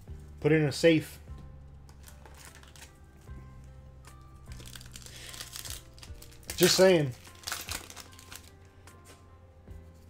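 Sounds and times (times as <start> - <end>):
soft background music: 0.0 - 10.0
foil pack crinkling: 1.9 - 3.3, 4.5 - 8.6.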